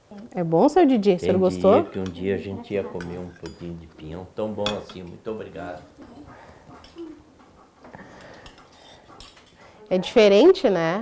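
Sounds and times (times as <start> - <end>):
faint low murmuring: 1.2 - 10.2.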